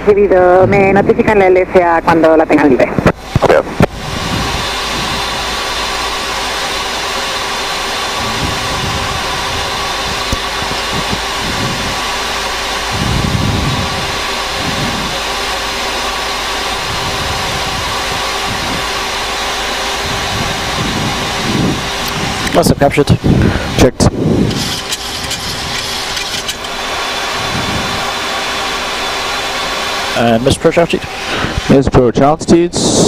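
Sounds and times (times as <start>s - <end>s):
faint steady hum: 0.0s - 33.0s
rush of airflow: 3.1s - 31.9s.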